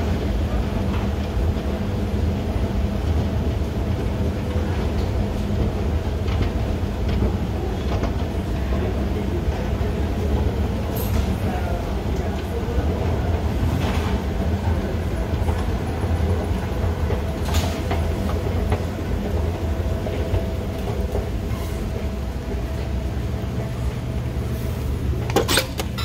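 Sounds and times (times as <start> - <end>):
low mechanical rumble: 0.0 - 26.0.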